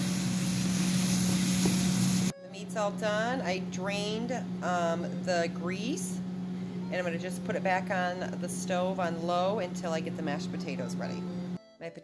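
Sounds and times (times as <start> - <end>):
meat sizzling in a frying pan: 0.0 - 2.3
steady low hum: 0.0 - 11.6.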